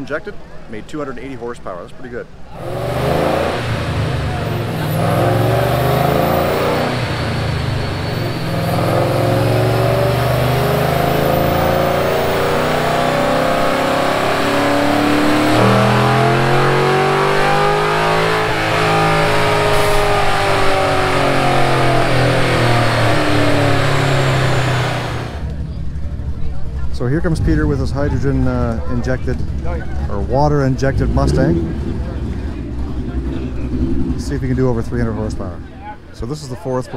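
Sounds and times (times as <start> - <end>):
car engine on dynamometer: 2.5 - 36.7.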